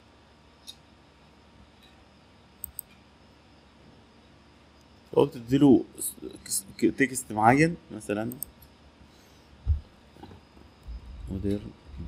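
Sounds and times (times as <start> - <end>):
dull low thump: 9.6 - 9.9.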